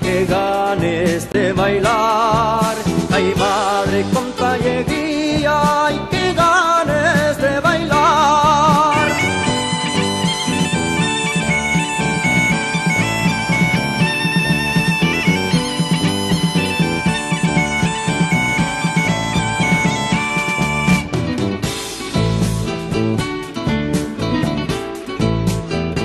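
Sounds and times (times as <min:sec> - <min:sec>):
rhythmic drum beat: 0:00.0 - 0:26.0
bagpipe drone: 0:08.9 - 0:21.2
bagpipe melody: 0:08.9 - 0:21.4.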